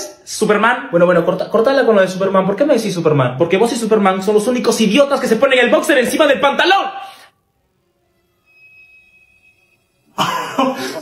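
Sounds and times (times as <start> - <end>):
faint held tone: 7.6 - 10.2.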